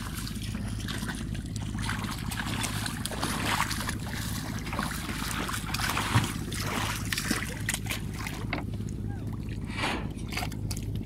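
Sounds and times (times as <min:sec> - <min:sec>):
feet splashing in shallow water: 0:00.0 - 0:11.0
steady low rumble: 0:00.0 - 0:11.0.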